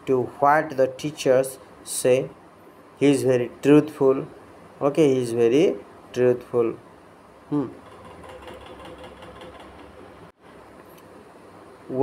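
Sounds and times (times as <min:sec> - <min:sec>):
man saying hmm: 0:07.5 - 0:07.8.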